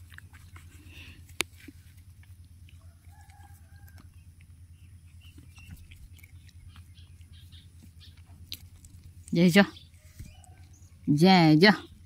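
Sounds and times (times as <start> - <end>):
faint distant bird call: 9.4 - 11.2.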